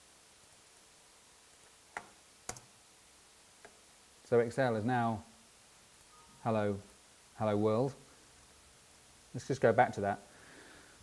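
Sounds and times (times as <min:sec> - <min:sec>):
room hiss: 0:00.0 - 0:11.0
sharp clicks: 0:02.0 - 0:02.7.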